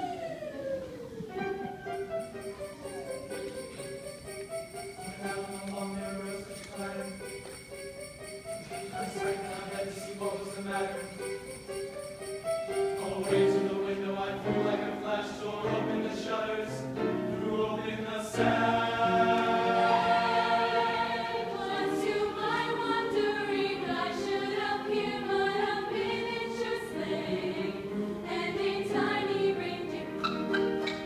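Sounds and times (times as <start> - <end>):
grand piano accompaniment: 0.0 - 31.0
choir singing in harmony: 8.7 - 31.0.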